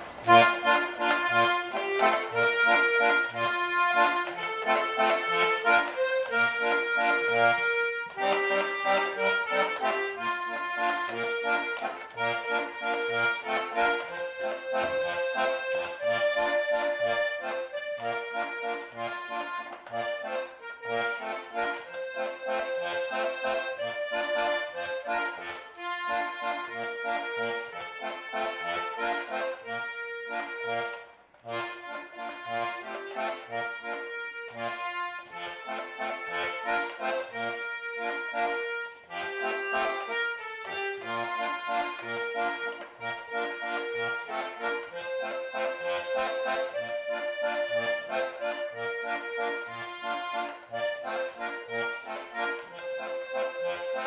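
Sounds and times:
button accordion tune: 0:00.0 - 0:54.0.

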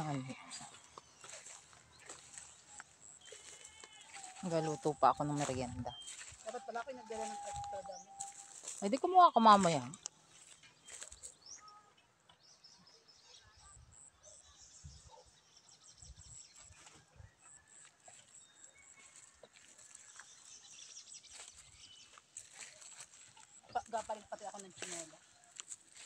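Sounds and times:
distant animal calls: 0:00.0 - 0:05.0.

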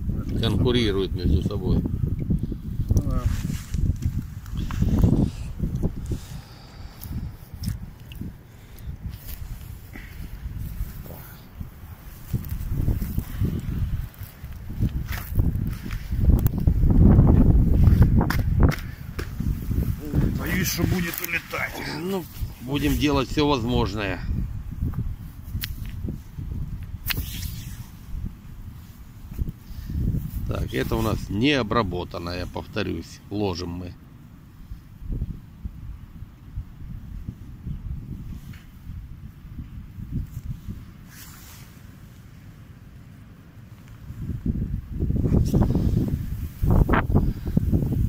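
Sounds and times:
wind buffeting microphone: 0:00.0 - 0:32.1, 0:34.6 - 0:41.7, 0:44.0 - 0:48.0
sharp rustle: 0:03.0 - 0:07.8, 0:27.0 - 0:28.1, 0:40.2 - 0:42.2.

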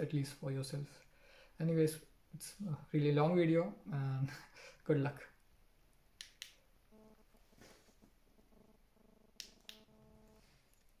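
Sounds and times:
sharp clicks: 0:06.2 - 0:06.6, 0:09.4 - 0:09.9.

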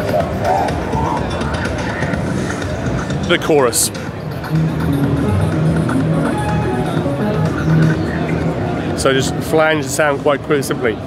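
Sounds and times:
synthesizer pad chords: 0:00.0 - 0:09.6.

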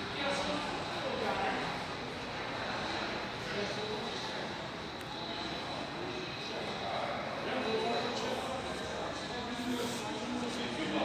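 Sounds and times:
faint distant voices: 0:00.0 - 0:11.0
faint high whine: 0:00.0 - 0:11.0.

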